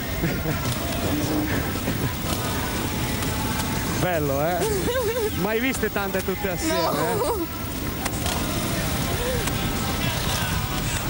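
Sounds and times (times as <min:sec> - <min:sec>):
pack of motorcycle engines: 0:00.0 - 0:11.0.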